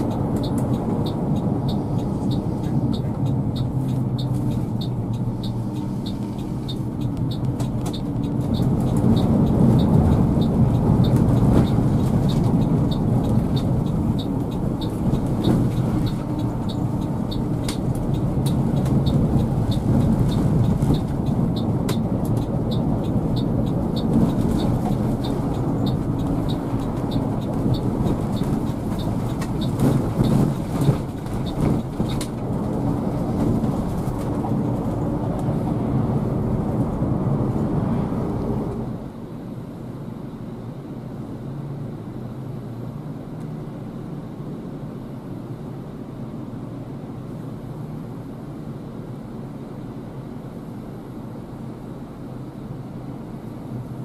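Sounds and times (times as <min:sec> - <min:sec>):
light regular ticking: 0:00.0 - 0:34.3
diesel engine running: 0:00.0 - 0:54.0
road noise: 0:00.0 - 0:54.0.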